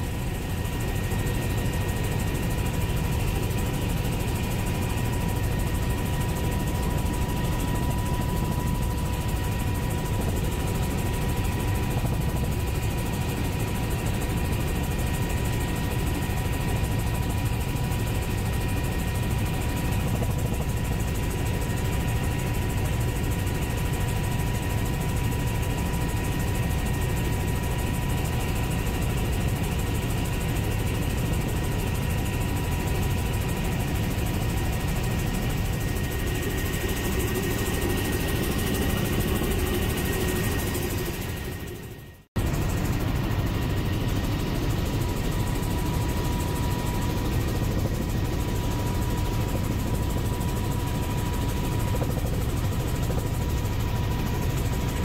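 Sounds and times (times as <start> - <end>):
helicopter rotor and engine drone: 0.0 - 55.0.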